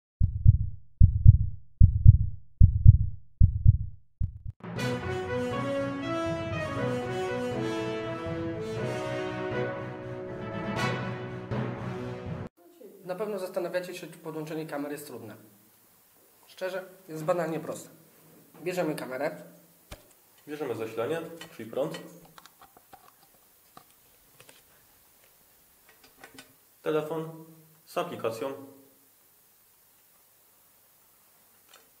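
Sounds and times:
heartbeat thumps: 0:00.2 - 0:04.6.

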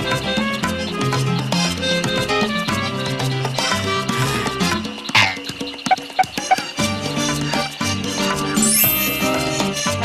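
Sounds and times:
latin-style background music: 0:00.0 - 0:10.0
short frog croaks: 0:05.2 - 0:06.7.

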